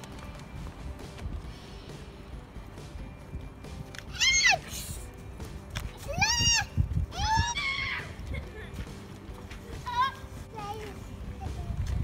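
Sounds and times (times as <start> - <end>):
girl squealing excitedly: 4.1 - 4.7, 6.1 - 8.2.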